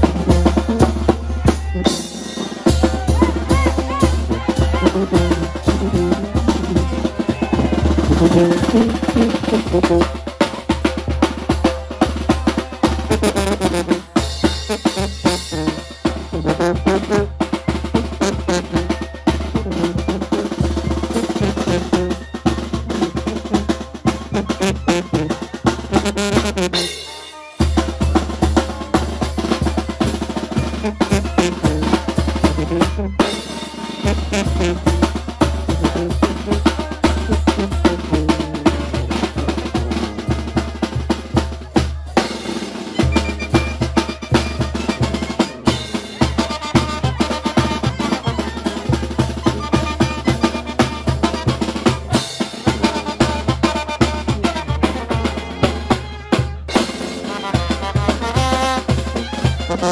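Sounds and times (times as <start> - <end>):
bass drum: 0.0 - 2.1, 2.7 - 26.8, 27.8 - 33.4, 34.0 - 41.8
snare drum rattling: 0.0 - 59.9
sousaphone bass line: 2.8 - 10.1, 13.1 - 26.9, 30.6 - 33.5, 35.7 - 40.6, 43.0 - 45.4.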